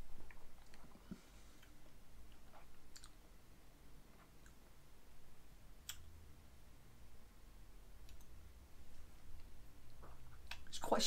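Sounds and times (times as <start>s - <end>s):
mouth clicks and lip smacks: 1.6s - 3.2s.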